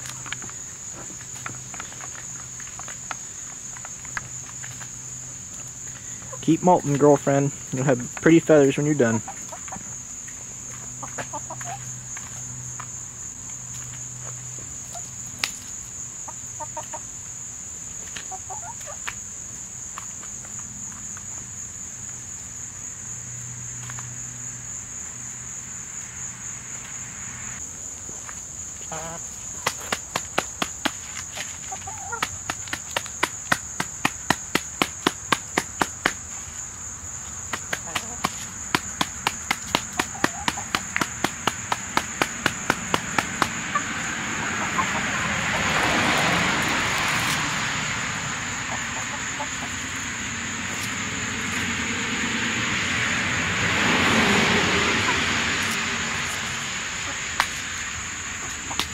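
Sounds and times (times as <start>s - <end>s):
hens clucking softly: 10.7s - 11.9s, 16.3s - 17.1s, 18.2s - 19.1s, 28.8s - 29.7s, 43.7s - 45.6s, 48.6s - 50.0s
beaks tapping: 29.6s - 36.3s, 37.5s - 43.9s.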